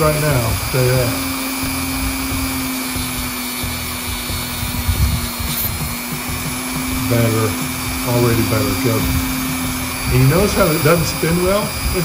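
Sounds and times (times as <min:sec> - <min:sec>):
rotary tool motor whine: 0:00.0 - 0:12.0
wire brush scrubbing metal: 0:00.0 - 0:12.0.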